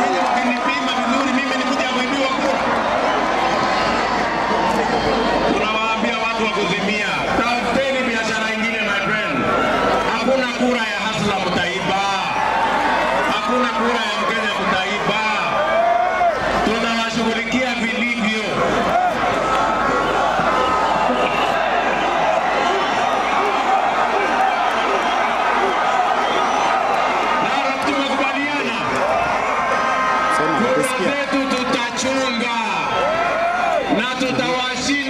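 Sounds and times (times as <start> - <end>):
man speaking over loudspeakers: 0.0 - 2.8, 5.5 - 19.1, 27.3 - 29.3, 30.2 - 35.0
crowd noise: 0.0 - 35.0.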